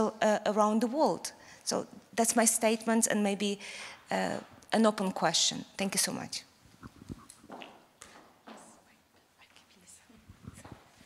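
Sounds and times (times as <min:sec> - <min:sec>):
microphone handling thuds: 0:06.8 - 0:07.7, 0:10.3 - 0:11.0.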